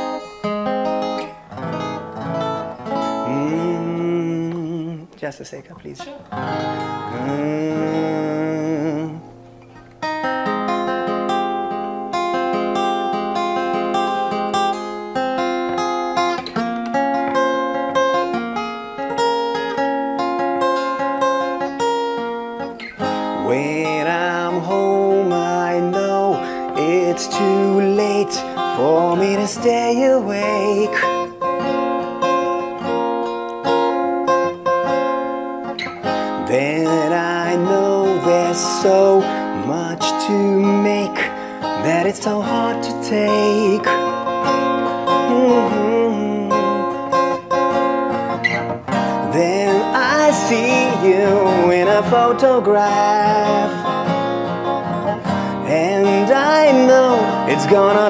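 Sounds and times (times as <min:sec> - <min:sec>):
acoustic guitar strumming: 0:00.0 - 0:58.0
man singing: 0:02.9 - 0:09.5, 0:22.9 - 0:32.3, 0:36.0 - 0:47.9, 0:48.9 - 0:58.0.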